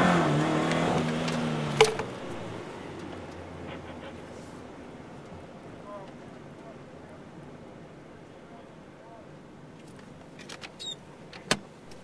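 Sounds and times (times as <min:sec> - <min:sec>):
car engine and road noise: 0:00.0 - 0:08.2
brief squeak: 0:10.8 - 0:11.0.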